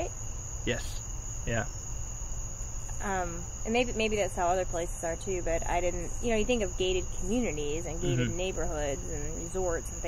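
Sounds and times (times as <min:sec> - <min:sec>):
person saying yeah: 0:00.7 - 0:01.7, 0:08.0 - 0:08.4
low hum: 0:07.8 - 0:09.2
high-pitched whine: 0:08.0 - 0:08.4.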